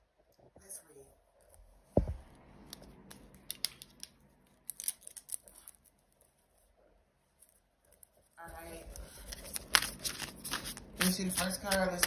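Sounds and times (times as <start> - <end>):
sharp clicks and snaps: 2.7 - 5.5.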